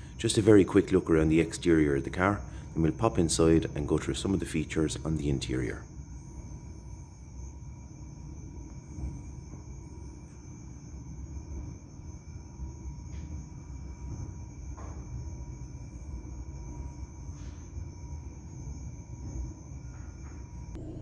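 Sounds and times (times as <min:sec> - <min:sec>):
faint high-pitched tones: 0:00.0 - 0:21.0
low room rumble: 0:00.0 - 0:21.0.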